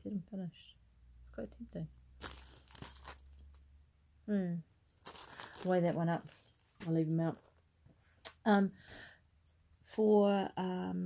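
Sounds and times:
plastic packaging crinkling: 2.2s - 3.6s, 4.9s - 7.6s.

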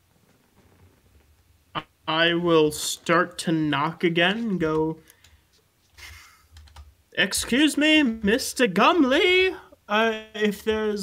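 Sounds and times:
faint keyboard typing: 4.4s - 7.6s.

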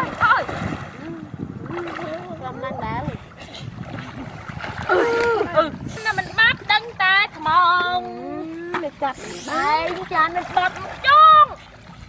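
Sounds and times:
people talking and calling: 4.9s - 11.6s.

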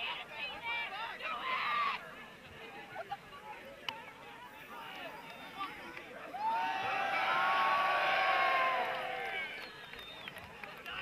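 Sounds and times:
crowd chatter: 0.0s - 11.0s
crowd cheering and yelling: 4.7s - 11.0s.

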